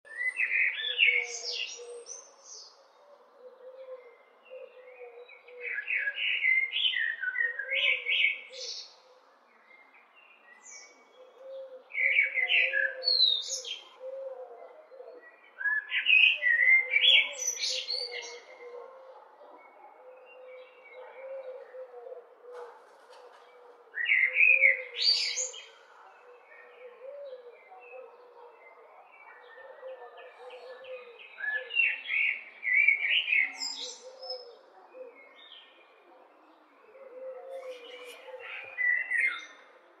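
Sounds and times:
blackbird singing: 0:00.1 - 0:02.9, 0:09.7 - 0:18.8, 0:23.9 - 0:39.7.

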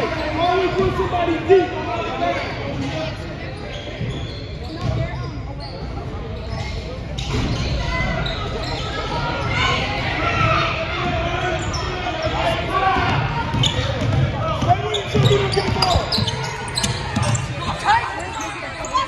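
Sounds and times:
spectators talking and shouting: 0:00.0 - 0:19.0.

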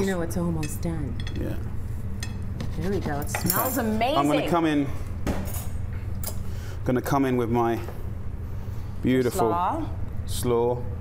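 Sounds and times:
low kitchen hum: 0:00.0 - 0:11.0
forks clinking on ceramic plate: 0:03.2 - 0:04.0.

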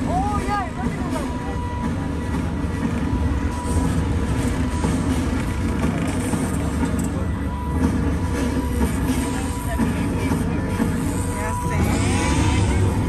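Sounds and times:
tram rumbling: 0:00.0 - 0:13.0.

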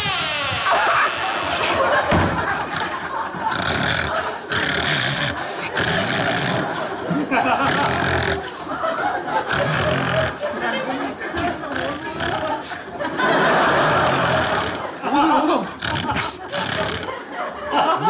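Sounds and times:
man snoring loudly: 0:01.1 - 0:08.6, 0:09.3 - 0:10.4, 0:11.7 - 0:12.9, 0:13.5 - 0:17.3.

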